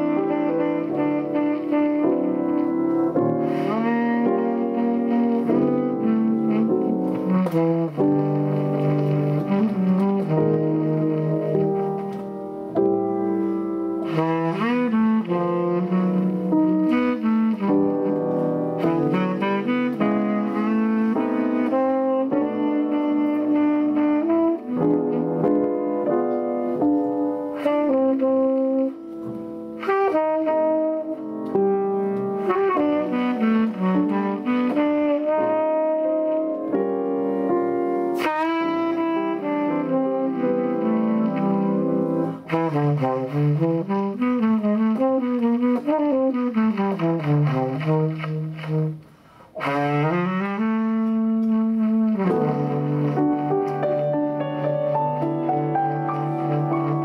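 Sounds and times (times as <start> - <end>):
piano accompaniment: 0.0 - 57.0
tenor saxophone jazz line: 0.0 - 57.0.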